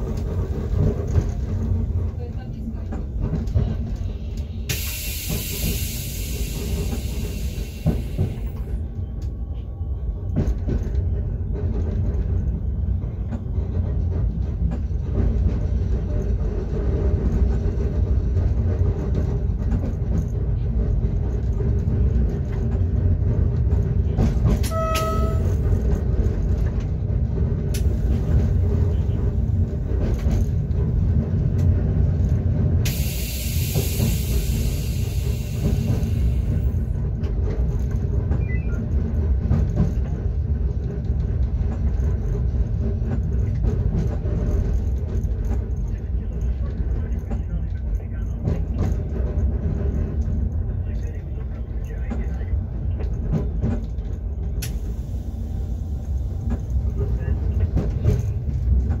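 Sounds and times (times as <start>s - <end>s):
train wheels rumbling: 0.0s - 59.0s
short beep: 24.7s - 25.6s.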